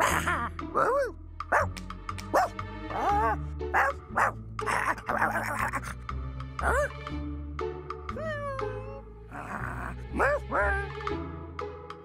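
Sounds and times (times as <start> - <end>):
cartoon dog barking and yipping: 0.0 - 1.7, 2.3 - 6.0, 6.6 - 7.0, 9.6 - 11.0
background music with bass line: 0.0 - 12.0.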